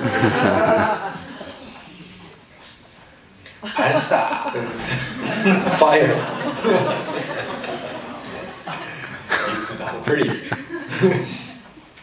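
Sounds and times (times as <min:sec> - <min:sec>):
murmur of voices: 0:00.0 - 0:11.8.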